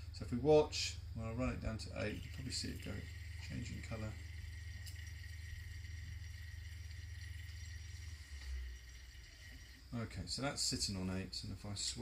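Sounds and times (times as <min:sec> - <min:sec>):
low hum: 0:00.0 - 0:10.2
faint room noise: 0:00.0 - 0:12.0.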